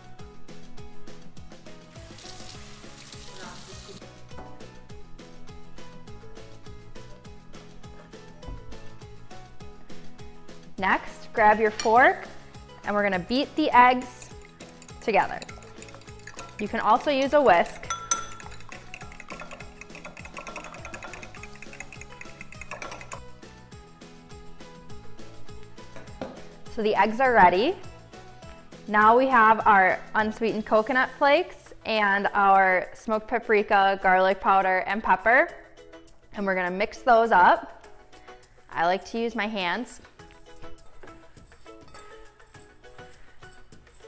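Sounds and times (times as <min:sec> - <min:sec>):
upbeat background music: 0:00.0 - 0:44.0
water running from tap: 0:01.9 - 0:04.0, 0:14.1 - 0:23.2
fork beating eggs in bowl: 0:13.1 - 0:23.3, 0:39.8 - 0:44.0.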